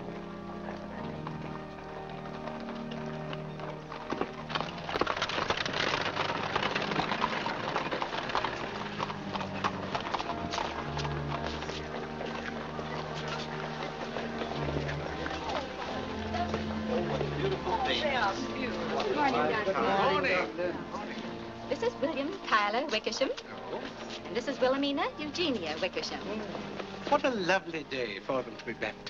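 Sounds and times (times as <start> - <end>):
murmur of voices: 0.0 - 4.6, 5.6 - 29.0
background music of low notes: 0.0 - 29.0
horse hooves on pavement: 0.0 - 29.0.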